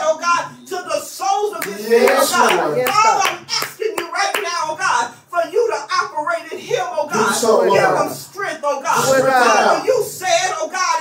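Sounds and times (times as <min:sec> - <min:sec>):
woman speaking into microphone: 0:01.8 - 0:03.2.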